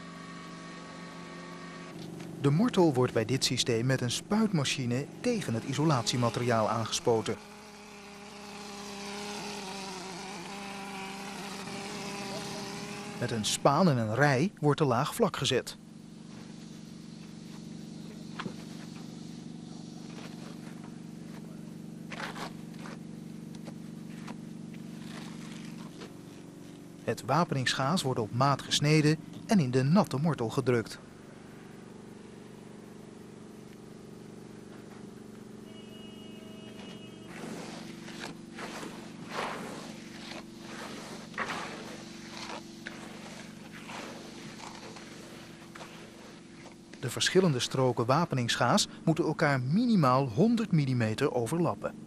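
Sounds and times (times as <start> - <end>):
motor humming: 0.0 - 14.3, 15.8 - 49.0
float scraping wet mortar: 24.3 - 26.2, 37.3 - 47.0.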